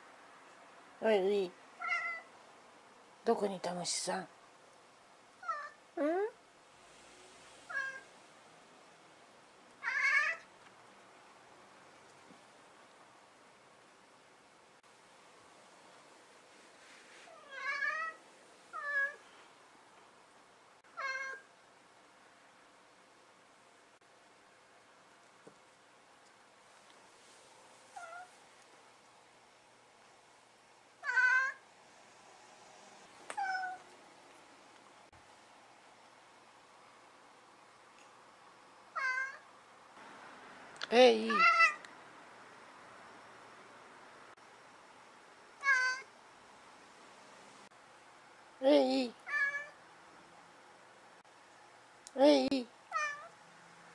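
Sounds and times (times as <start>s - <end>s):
cat meowing: 1.8s - 2.3s, 5.4s - 5.8s, 7.7s - 8.1s, 9.8s - 10.5s, 17.3s - 19.2s, 21.0s - 21.5s, 28.0s - 28.3s, 31.0s - 31.6s, 33.4s - 33.8s, 38.9s - 39.4s, 41.3s - 41.8s, 45.6s - 46.1s, 49.2s - 49.8s, 52.9s - 53.3s.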